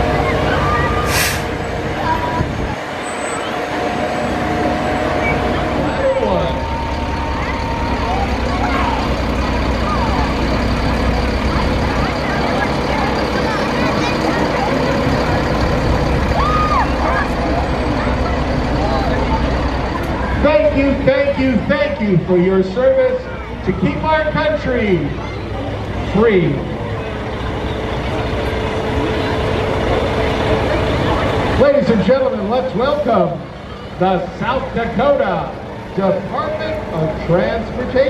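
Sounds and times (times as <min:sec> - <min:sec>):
truck engines rumbling: 0:00.0 - 0:38.0
short sharp hiss: 0:01.1 - 0:01.6.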